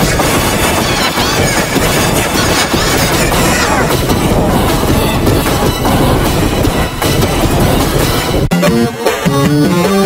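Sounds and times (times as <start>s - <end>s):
heavily distorted song noise: 0.0s - 10.0s.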